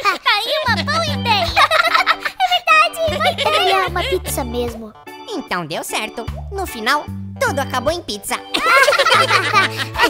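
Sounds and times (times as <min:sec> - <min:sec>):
background music with low bass: 0:00.7 - 0:02.3, 0:02.9 - 0:10.0.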